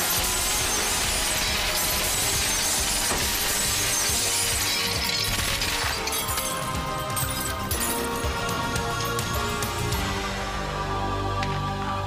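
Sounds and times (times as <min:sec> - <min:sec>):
debris falling: 0:00.0 - 0:09.3
glass shattering: 0:00.0 - 0:09.6
dramatic score music: 0:00.0 - 0:12.0.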